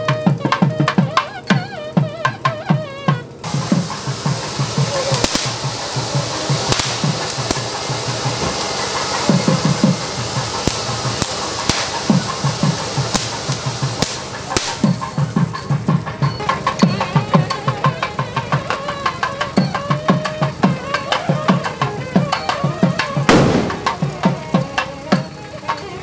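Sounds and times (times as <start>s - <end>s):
drum beats: 0.0s - 26.0s
firework fountain hissing: 0.0s - 26.0s
firework crackles: 3.4s - 26.0s.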